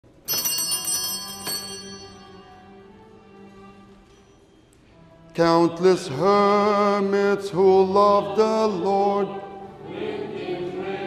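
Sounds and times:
small hand bells ringing: 0:00.1 - 0:02.8.

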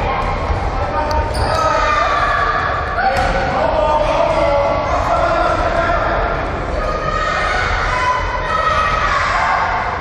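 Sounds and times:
children shouting: 0:01.5 - 0:03.4, 0:06.7 - 0:10.0.

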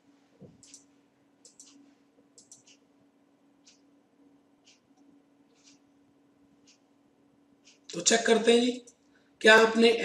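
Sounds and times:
computer mouse clicks: 0:00.6 - 0:01.8, 0:02.4 - 0:02.8, 0:04.6 - 0:05.8.

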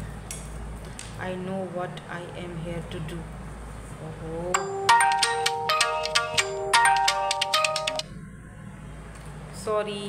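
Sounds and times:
mobile phone ringtone melody: 0:04.6 - 0:08.0.

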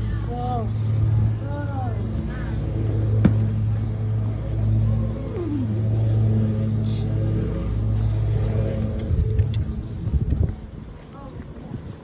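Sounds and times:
irregular low rumbling: 0:00.0 - 0:12.0
low engine hum: 0:00.0 - 0:12.0.

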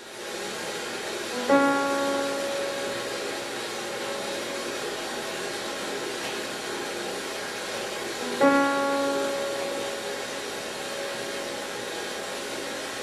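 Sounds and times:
loud steady hiss: 0:00.0 - 0:13.0
grand piano note ringing: 0:01.3 - 0:05.8, 0:08.2 - 0:12.2.

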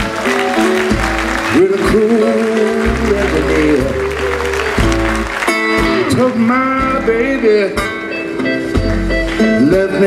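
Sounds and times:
blues band playing: 0:00.0 - 0:10.0.

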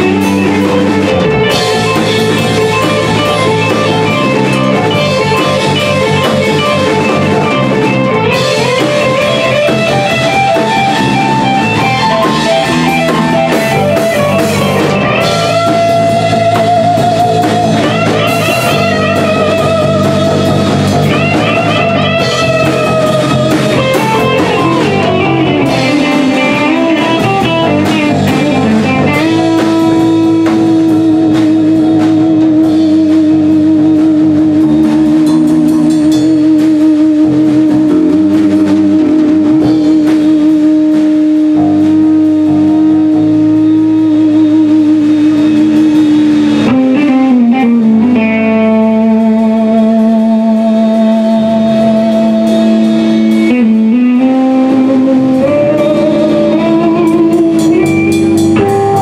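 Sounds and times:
bass guitar: 0:00.0 - 0:59.0
drum kit: 0:00.0 - 0:59.0
electric guitar sustained note: 0:00.0 - 0:59.0.

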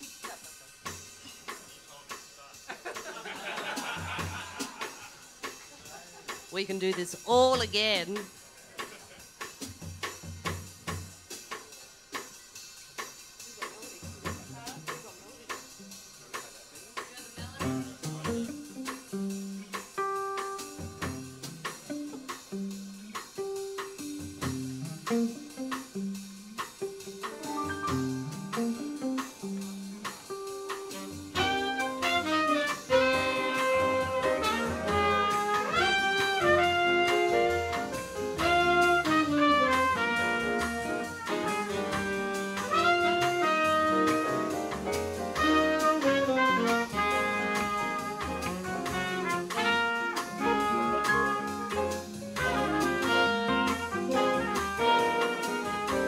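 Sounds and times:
drum kit: 0:00.0 - 0:56.0
upright bass: 0:06.6 - 0:08.2, 0:17.4 - 0:20.0, 0:20.7 - 0:56.0
chords: 0:17.6 - 0:56.0
horn section playing melody: 0:30.9 - 0:56.0.

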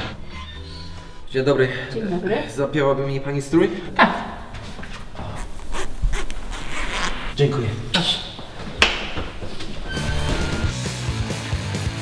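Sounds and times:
zipper rasping: 0:05.0 - 0:07.4.

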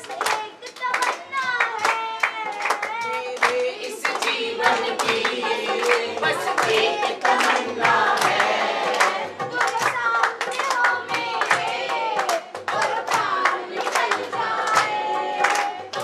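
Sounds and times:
boy singing a devotional song: 0:00.0 - 0:04.1, 0:09.4 - 0:11.4
hands clapping rhythmically: 0:00.0 - 0:16.0.

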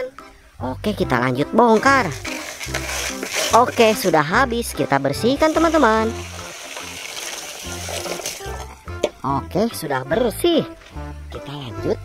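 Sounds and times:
background music: 0:00.0 - 0:12.0
water splashing on plastic: 0:01.7 - 0:04.4, 0:05.3 - 0:08.8.

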